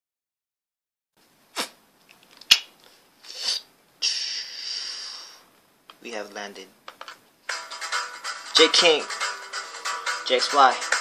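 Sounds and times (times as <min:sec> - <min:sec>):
sniff: 0:01.6 - 0:01.8, 0:03.2 - 0:05.5
long hissing breath: 0:03.2 - 0:05.5.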